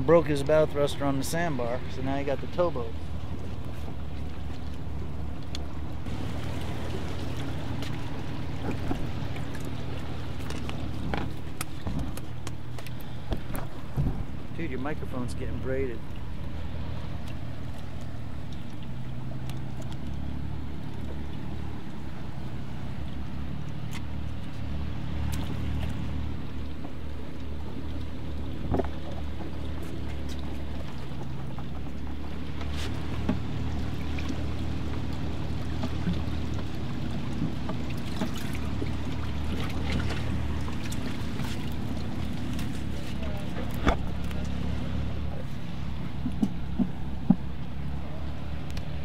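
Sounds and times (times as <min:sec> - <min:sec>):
boat engine humming: 0:00.0 - 0:49.0.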